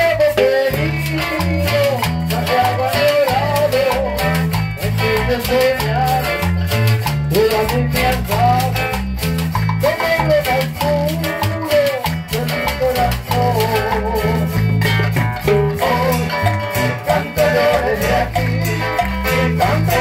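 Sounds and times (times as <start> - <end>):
percussion beat: 0.0 - 20.0
steady bass line: 0.0 - 20.0.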